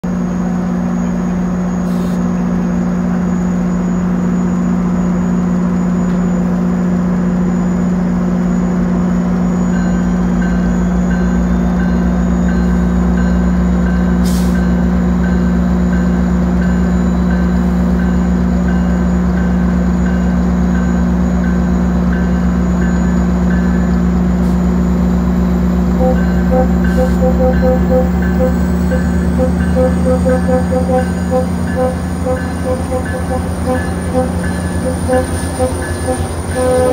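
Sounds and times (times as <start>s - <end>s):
diesel locomotive idling: 0.0s - 36.9s
high-pitched beeping: 26.0s - 36.9s.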